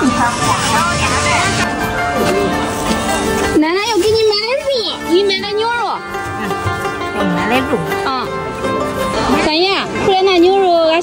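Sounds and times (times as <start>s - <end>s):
people talking: 0.0s - 6.1s
background music with held tones: 0.0s - 11.0s.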